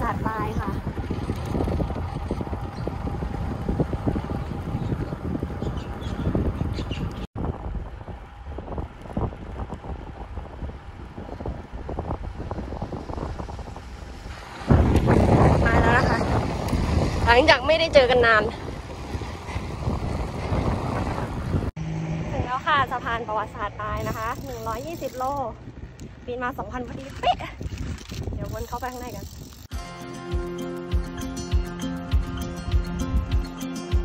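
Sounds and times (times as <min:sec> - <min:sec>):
wind buffeting microphone: 0:00.0 - 0:29.7.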